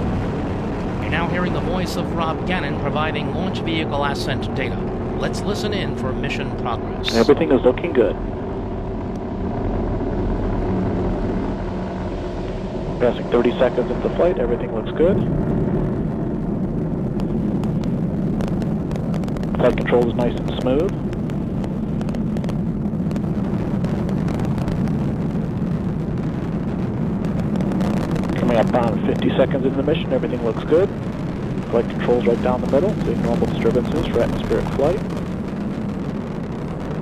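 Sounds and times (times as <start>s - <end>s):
rocket engine rumble: 0.0s - 37.0s.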